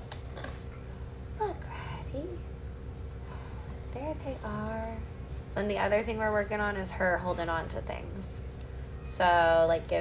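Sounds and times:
low room hum: 0.0s - 10.0s
woman speaking: 3.9s - 10.0s.

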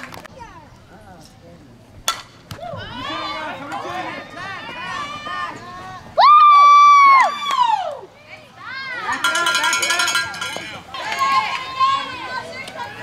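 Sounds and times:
bat hitting ball: 2.1s - 2.6s
people shouting and cheering: 2.5s - 13.0s.

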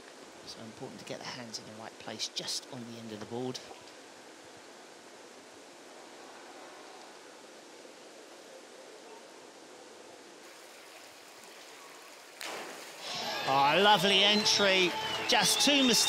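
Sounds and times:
outdoor pool ambience hiss: 0.0s - 16.0s.

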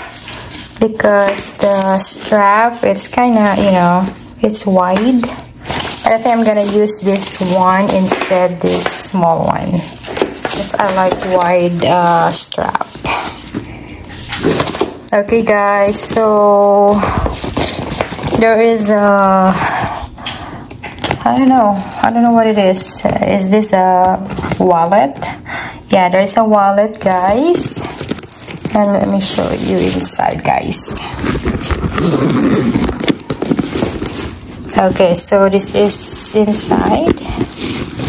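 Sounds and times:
handbag rustling: 0.0s - 20.2s, 27.0s - 38.0s
metal zipper pulled open: 31.2s - 34.4s.

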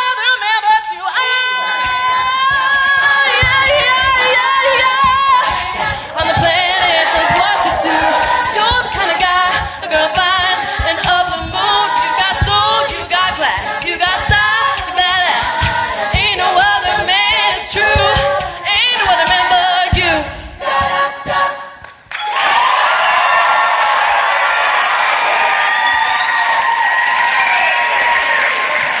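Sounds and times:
female a cappella group singing: 0.0s - 22.0s
audience applause and cheering: 1.2s - 18.5s, 21.8s - 29.0s.

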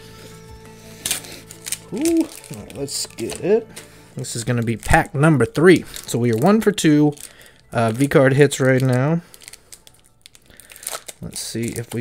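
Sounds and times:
quiet background music: 0.0s - 12.0s
foil wrapper tearing: 1.0s - 3.5s, 4.3s - 12.0s.

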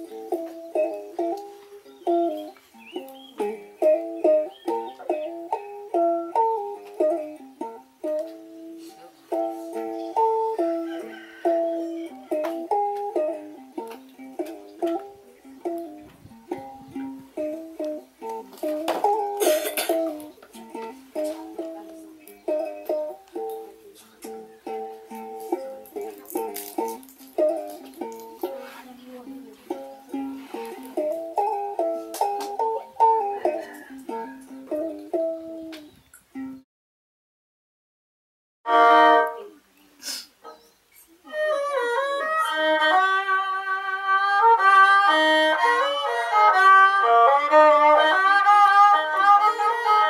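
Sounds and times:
plucked string instrument melody: 0.0s - 36.6s, 38.7s - 39.6s, 41.2s - 50.0s.

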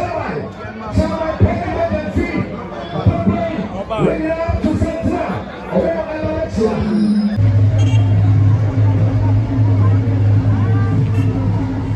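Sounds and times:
loud low hum: 6.2s - 11.9s.

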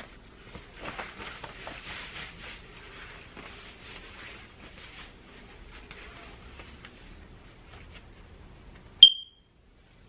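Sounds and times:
high-pitched electronic beep: 9.0s - 9.4s.

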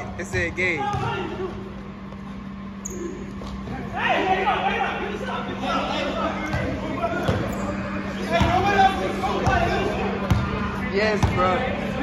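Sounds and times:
players talking: 0.0s - 12.0s
basketball bouncing on wooden floor: 0.4s - 1.1s.

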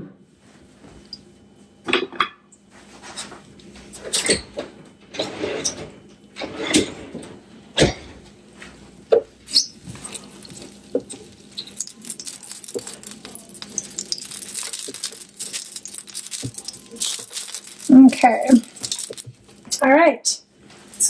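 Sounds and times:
scratchy hiss: 9.5s - 19.8s.

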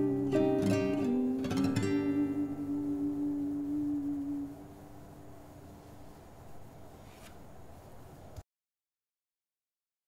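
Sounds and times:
strummed guitar chord ringing: 0.0s - 5.0s.

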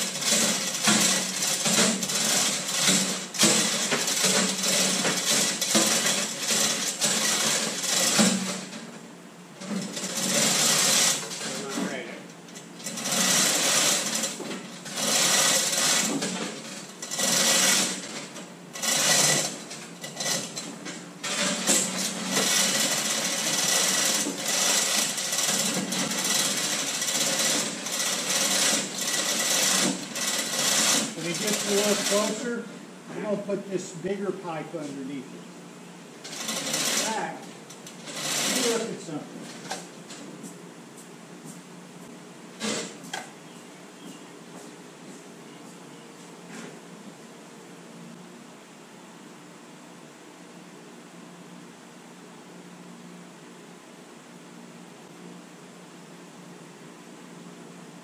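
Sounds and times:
rapid mechanical rattling and clatter: 0.0s - 33.5s, 36.2s - 40.4s, 42.5s - 43.3s.

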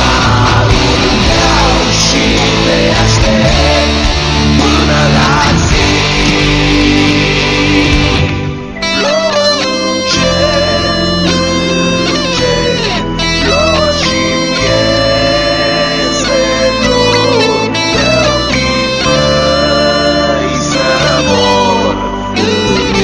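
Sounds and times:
distorted rock guitar lead: 0.0s - 23.0s
rock backing: 0.0s - 23.0s.

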